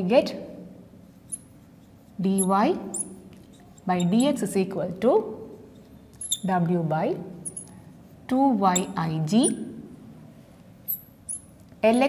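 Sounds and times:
marker squeaking on glass board: 0:01.2 - 0:04.5, 0:06.1 - 0:06.5, 0:07.4 - 0:07.9, 0:08.6 - 0:09.7, 0:10.8 - 0:11.6.

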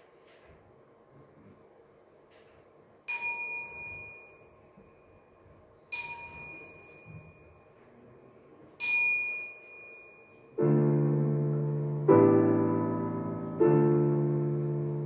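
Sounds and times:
small prayer bell ringing: 0:03.1 - 0:07.8, 0:08.8 - 0:10.6.

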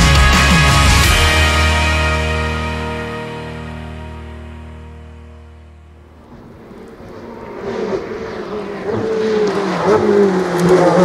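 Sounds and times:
intro music: 0:00.0 - 0:06.7
race car engine approaching: 0:05.2 - 0:11.0.

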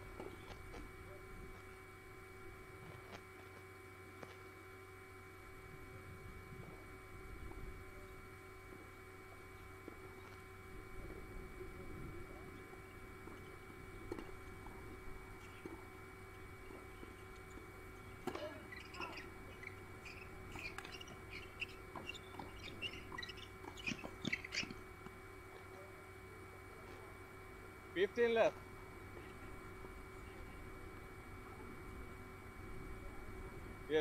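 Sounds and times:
steady background hum: 0:00.0 - 0:34.0
birds chirping: 0:00.1 - 0:00.8, 0:12.3 - 0:25.7.

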